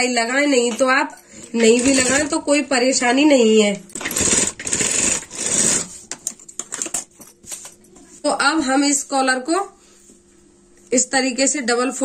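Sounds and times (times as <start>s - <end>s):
sewing machine stitching: 1.5s - 2.5s, 3.9s - 5.9s.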